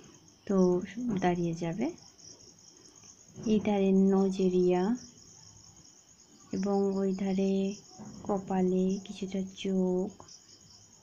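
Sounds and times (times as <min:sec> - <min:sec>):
insects chirring: 0:00.0 - 0:11.0
woman speaking: 0:00.5 - 0:02.0, 0:03.4 - 0:05.1, 0:06.5 - 0:10.2.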